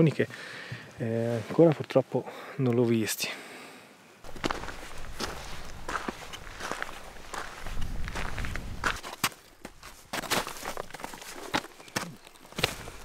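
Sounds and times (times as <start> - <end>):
footsteps on dry grass and stones: 4.2 - 13.0.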